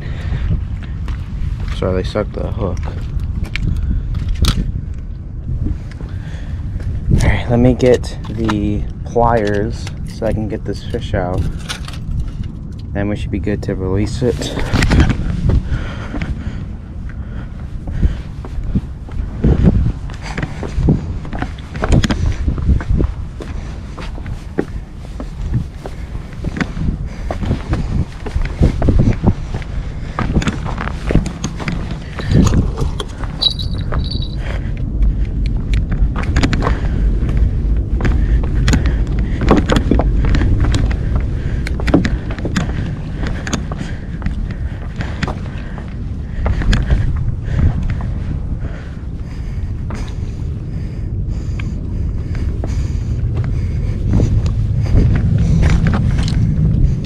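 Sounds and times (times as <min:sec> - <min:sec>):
wind buffeting microphone: 0:00.0 - 0:57.0
footsteps on loose rocks: 0:17.8 - 0:48.4, 0:52.3 - 0:57.0.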